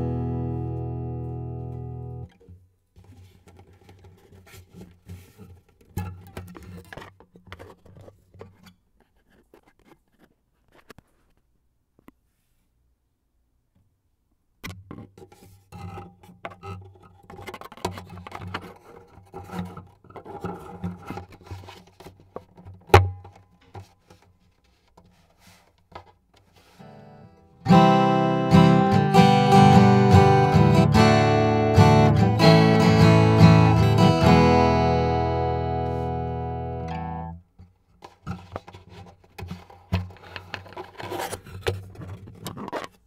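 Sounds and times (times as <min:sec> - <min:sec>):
acoustic guitar chord: 0:00.0 - 0:02.3, 0:27.6 - 0:37.3
hand damping guitar strings: 0:00.0 - 0:02.6, 0:26.6 - 0:40.2.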